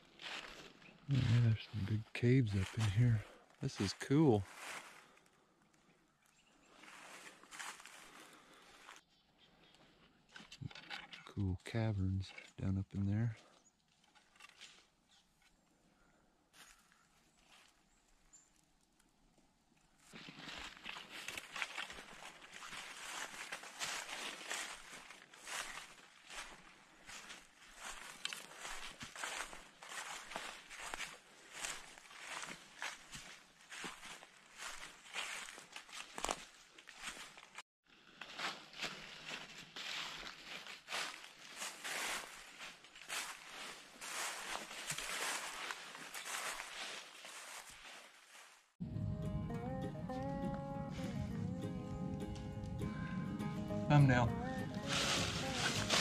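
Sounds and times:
footsteps crunching dry leaves: 0.0s - 5.2s, 6.7s - 9.0s, 20.0s - 48.8s, 54.1s - 56.0s.

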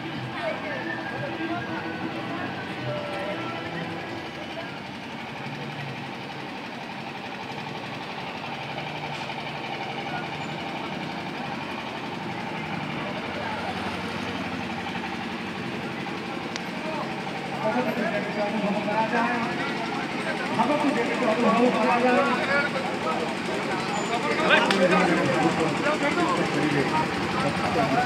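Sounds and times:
engine rumble: 0.0s - 28.0s
indistinct voices: 0.0s - 28.0s.

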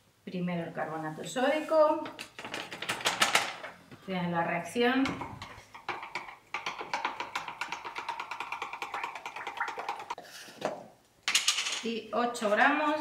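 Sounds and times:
stick stirring in plastic jug: 5.3s - 10.6s.

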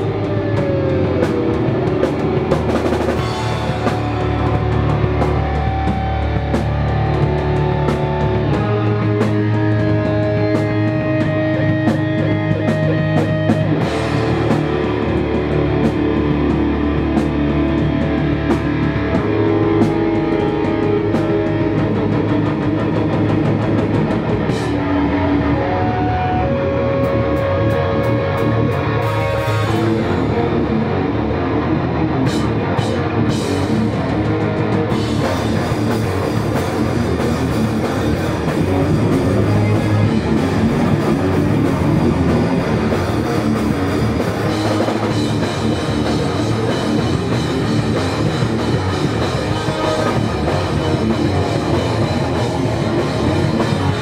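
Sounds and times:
bass guitar: 0.0s - 54.0s
distorted electric guitars: 0.0s - 54.0s
drum kit: 0.0s - 54.0s.

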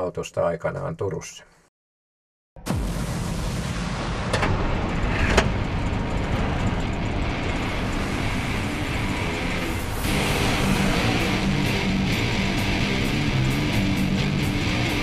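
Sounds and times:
truck engine running: 2.7s - 15.0s.

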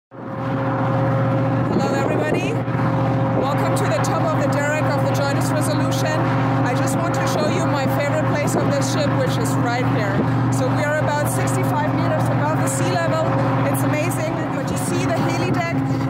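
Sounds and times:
machinery hum: 0.2s - 16.0s.

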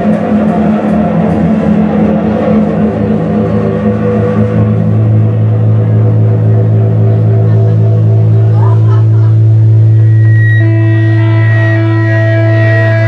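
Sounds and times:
electric guitar droning chord: 0.0s - 13.0s.

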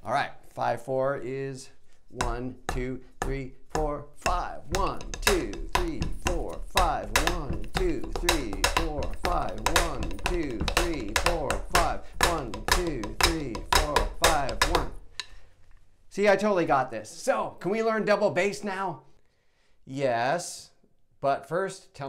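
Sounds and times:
man counting aloud: 0.0s - 15.0s, 16.1s - 19.1s
drumsticks striking a drum: 2.2s - 15.4s.

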